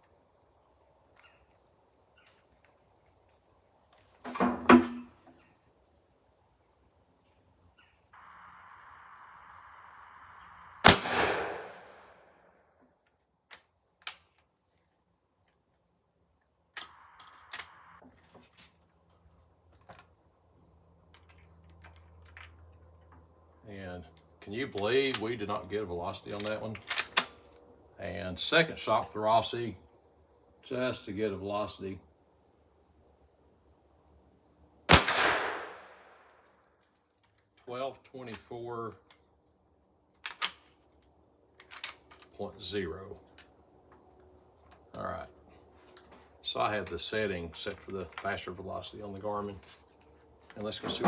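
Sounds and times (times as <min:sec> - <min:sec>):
rifle shot with echo: 0:10.7 - 0:12.4, 0:34.9 - 0:36.3.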